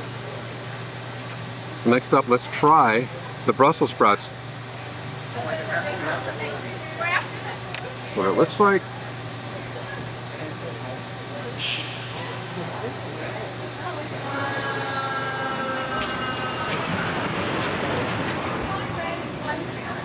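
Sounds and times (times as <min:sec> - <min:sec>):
people talking nearby: 0:01.8 - 0:15.0, 0:17.8 - 0:20.0
short hiss: 0:11.6 - 0:12.4.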